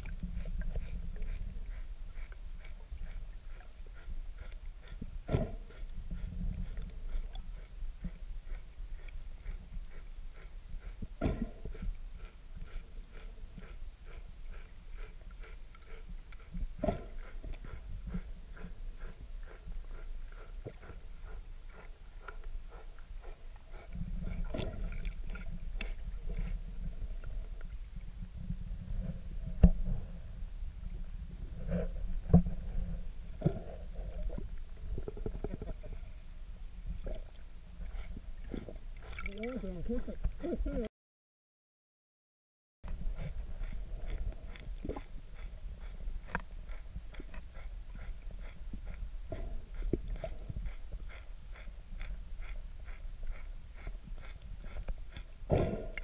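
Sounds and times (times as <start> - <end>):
underwater rumble of water: 0.0 - 40.9.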